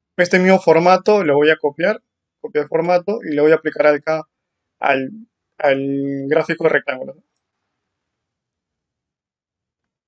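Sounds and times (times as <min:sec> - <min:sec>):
man speaking: 0:00.2 - 0:04.2, 0:04.8 - 0:07.2.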